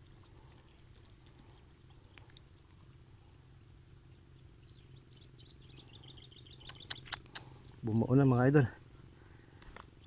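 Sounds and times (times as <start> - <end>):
small bird chirping: 0.0 - 8.3
low steady hum: 0.0 - 10.0
sharp clicks: 6.6 - 7.5.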